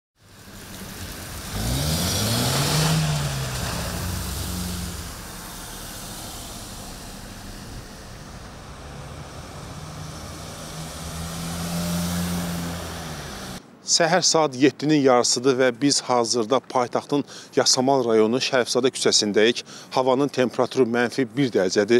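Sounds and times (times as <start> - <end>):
car accelerating past: 0.2 - 13.6
tyre hiss on wet road: 0.2 - 13.6
vehicle engine: 0.2 - 13.6.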